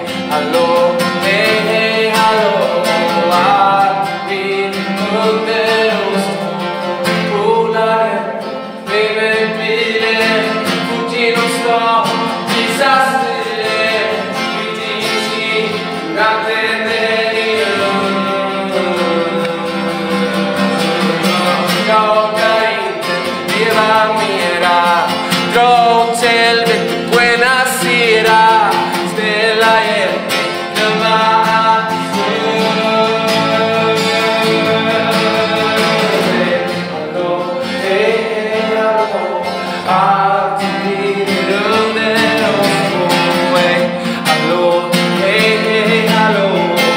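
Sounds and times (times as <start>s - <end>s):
acoustic guitar: 0.0s - 46.9s
man singing: 0.0s - 46.9s.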